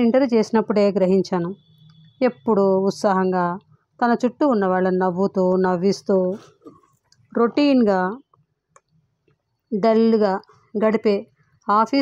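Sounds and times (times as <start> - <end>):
woman reading aloud: 7.4 - 8.2, 9.8 - 12.0.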